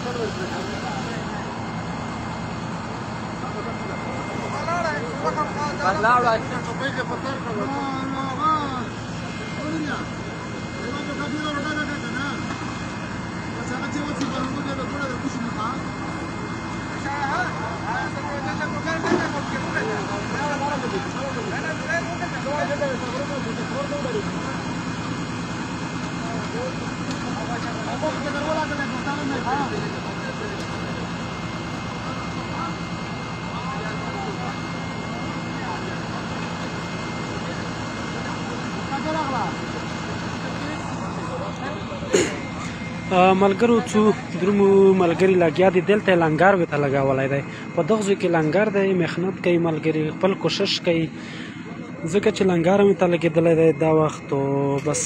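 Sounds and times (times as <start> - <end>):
engine running steadily: 0.0 - 55.0
men talking: 0.0 - 55.0.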